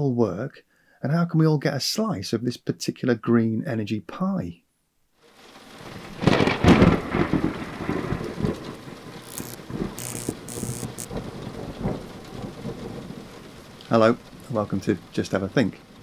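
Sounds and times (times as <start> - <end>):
rain falling: 5.2 - 16.0
thunder rumble: 5.8 - 16.0.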